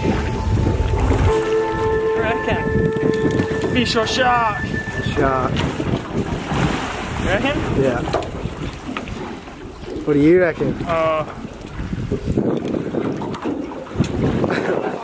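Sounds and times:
wavering voice sounds: 0.0s - 5.6s
steady pitched whine: 0.0s - 6.1s
water noise: 0.0s - 15.0s
wind buffeting microphone: 0.0s - 15.0s.

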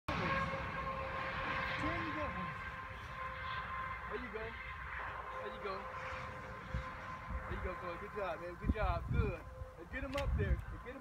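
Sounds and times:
wind rumbling on microphone: 0.1s - 11.0s.

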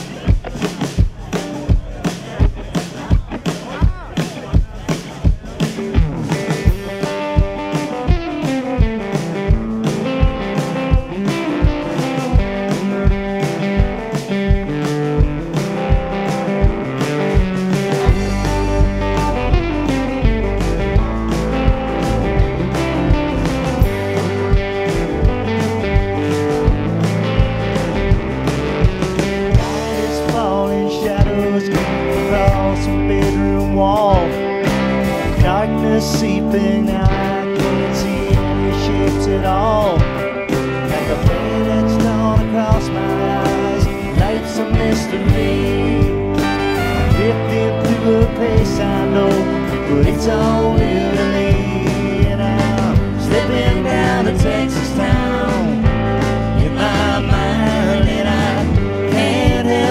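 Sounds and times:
electric guitar: 0.0s - 59.9s
heavy bass: 0.0s - 59.9s
steady drum beat: 0.0s - 59.9s
fiddle: 46.4s - 47.6s.

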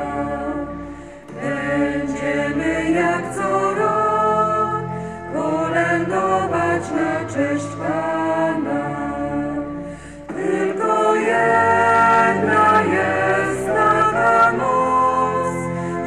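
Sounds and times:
choir singing slow sacred song: 0.0s - 16.0s.

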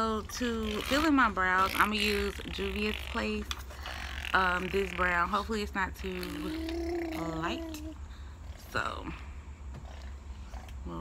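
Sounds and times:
woman speaking: 0.0s - 8.0s, 8.6s - 9.3s.

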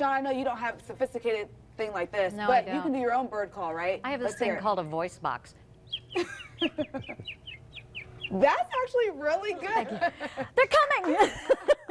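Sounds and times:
person imitating bird chirps: 5.9s - 8.6s.

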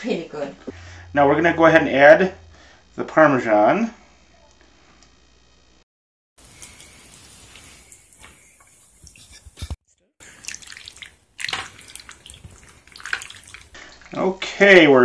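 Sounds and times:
sauce bubbling in skillet: 6.4s - 14.4s.

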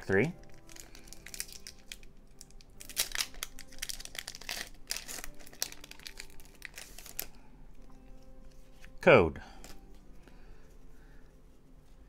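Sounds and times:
foil wrapper crinkling and tearing: 0.0s - 7.5s.

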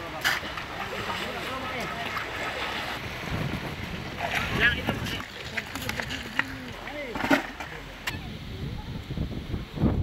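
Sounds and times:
wind rumbling on microphone: 2.4s - 6.9s, 8.0s - 10.0s.

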